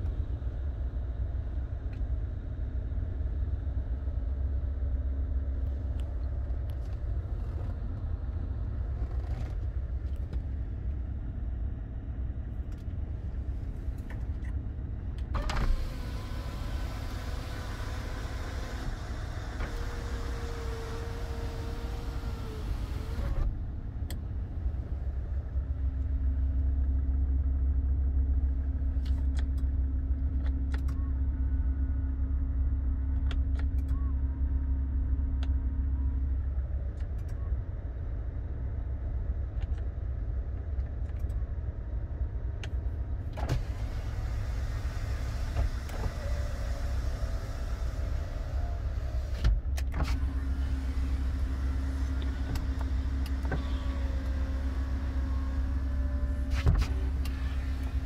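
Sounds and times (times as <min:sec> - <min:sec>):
power window motor humming: 0:15.4 - 0:23.5, 0:43.4 - 0:58.0.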